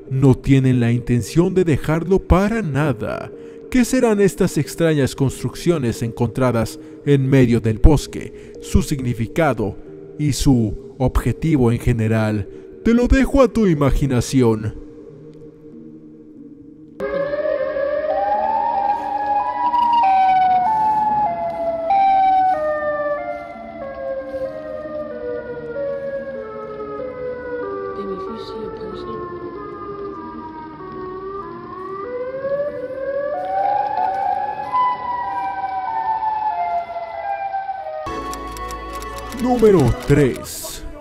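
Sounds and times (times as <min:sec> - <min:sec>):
siren-like pitched sound: 0:17.0 - 0:26.9.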